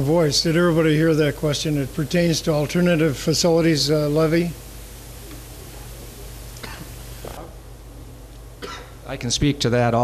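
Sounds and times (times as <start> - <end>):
steady low hum: 0.0 - 10.0
person coughing: 6.6 - 7.5, 8.6 - 9.0.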